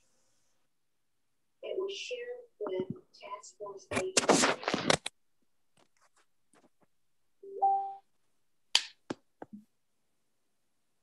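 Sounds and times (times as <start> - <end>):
two-note electronic chime: 7.4 - 8.0.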